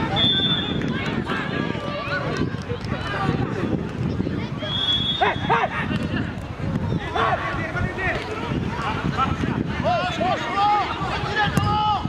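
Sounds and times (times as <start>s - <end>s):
high whistle tone: 0.1s - 0.7s, 4.6s - 5.5s
players shouting: 4.6s - 12.0s.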